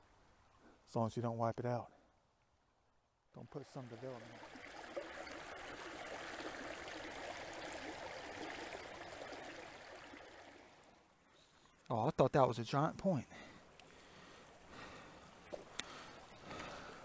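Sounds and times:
creek water running over rocks: 3.4s - 11.2s, 11.8s - 17.0s.

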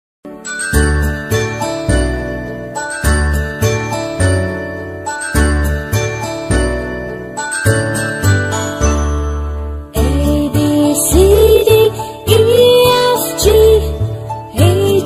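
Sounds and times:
bright chiming notes: 0.3s - 10.3s.

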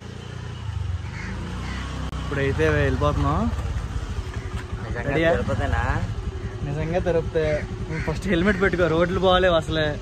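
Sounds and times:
motor scooter engine running: 0.0s - 10.0s.

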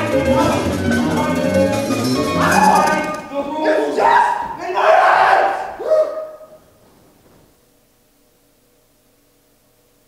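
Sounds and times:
faint room hum: 0.0s - 10.0s
person crying out: 2.2s - 6.6s.

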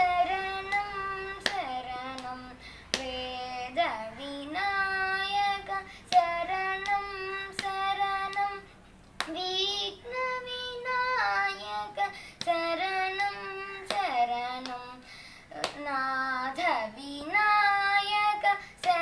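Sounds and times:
boy singing unaccompanied: 0.0s - 19.0s.

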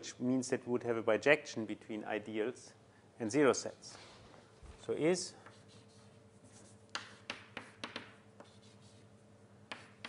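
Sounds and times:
writing taps and strokes on board: 6.9s - 9.1s, 9.7s - 10.0s.

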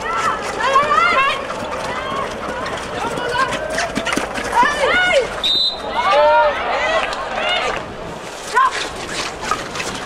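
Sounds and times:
players shouting: 0.0s - 8.8s.

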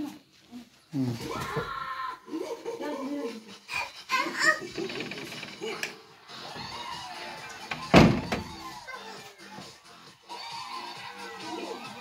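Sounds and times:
background music: 2.2s - 12.0s
loud thump: 7.8s - 8.6s.

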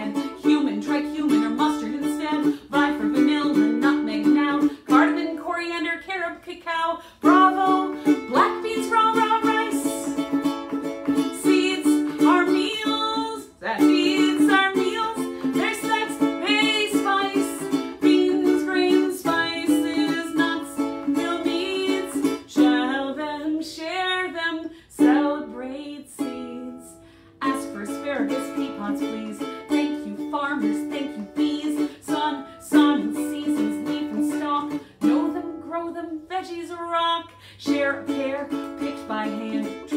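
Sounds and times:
ukulele strumming: 0.0s - 39.9s
woman singing: 0.0s - 39.9s.

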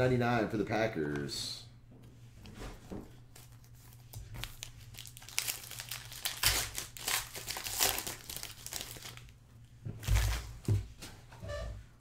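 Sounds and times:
plastic wrapper crinkling and tearing: 3.4s - 9.3s.

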